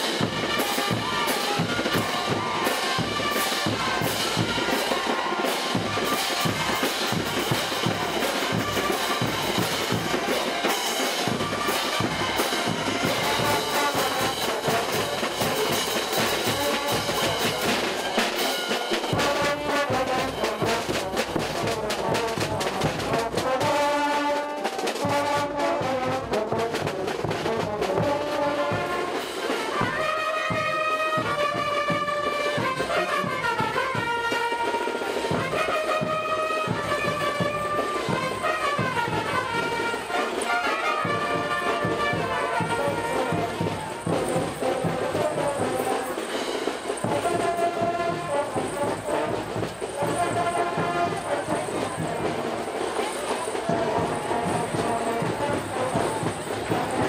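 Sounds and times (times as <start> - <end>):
brass band playing dance music: 0.0 - 57.0
steady drum beat: 0.0 - 57.0.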